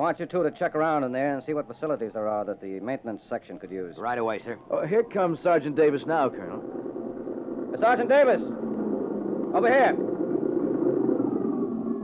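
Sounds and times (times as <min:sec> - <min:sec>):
faint whine falling in pitch: 0:00.3 - 0:12.0
vehicle engine running: 0:05.1 - 0:12.0.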